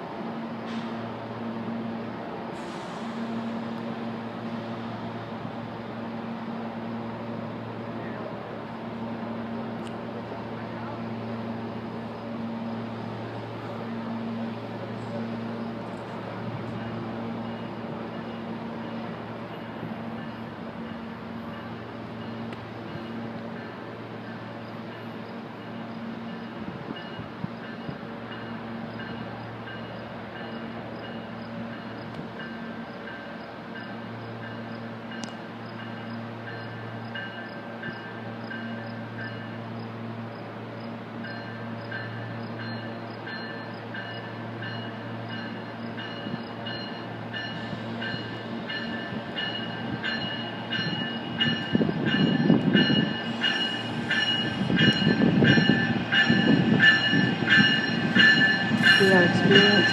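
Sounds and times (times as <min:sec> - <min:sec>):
train hum: 0:00.0 - 0:59.9
train wheels rumbling on rails: 0:00.0 - 0:59.9.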